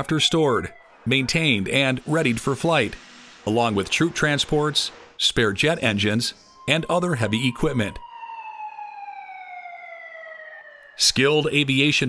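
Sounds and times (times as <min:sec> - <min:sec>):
electric hoist motor whining: 0:00.0 - 0:07.0.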